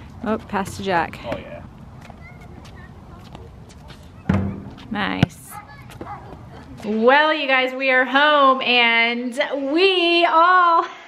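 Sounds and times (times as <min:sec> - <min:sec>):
basketball thudding on court: 0:04.3 - 0:06.4.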